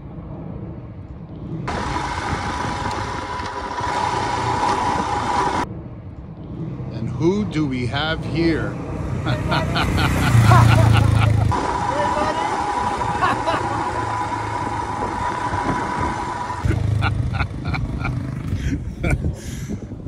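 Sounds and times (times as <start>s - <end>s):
voices: 7.0s - 18.2s
people laughing: 9.2s - 14.2s, 16.6s - 19.3s.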